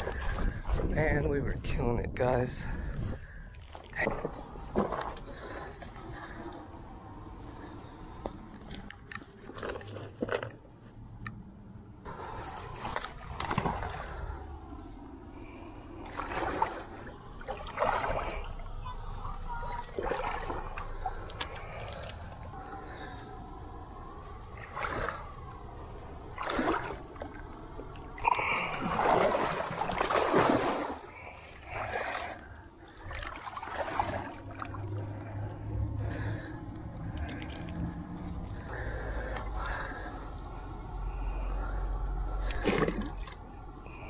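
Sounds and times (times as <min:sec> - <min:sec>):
steady low rumble: 0:00.0 - 0:44.0
water sloshing and splashing: 0:00.0 - 0:44.0.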